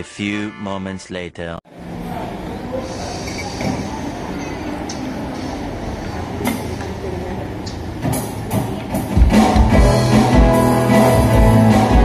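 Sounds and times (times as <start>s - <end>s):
band playing: 0.0s - 1.0s, 8.2s - 12.0s
cafe background noise: 1.7s - 9.5s.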